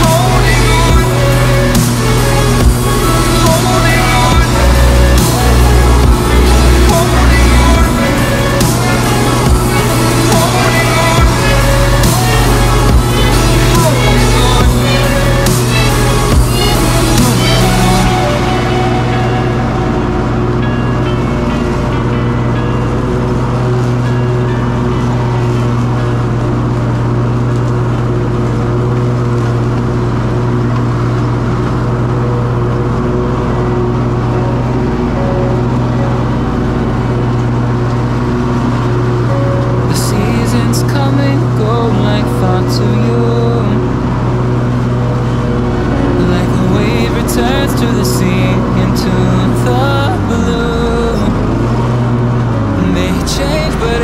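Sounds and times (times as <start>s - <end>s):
person singing: 0.0s - 27.4s, 31.5s - 54.0s
electronic music: 0.0s - 54.0s
mower engine drone: 0.0s - 54.0s.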